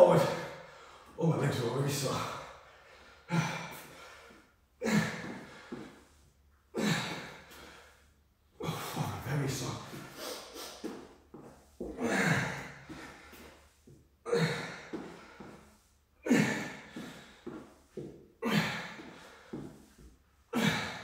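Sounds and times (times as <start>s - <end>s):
man breathing heavily and grunting: 0.0s - 21.0s.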